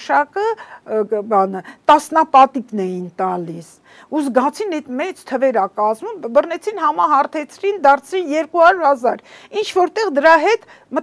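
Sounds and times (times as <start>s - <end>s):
woman speaking: 0.0s - 11.0s.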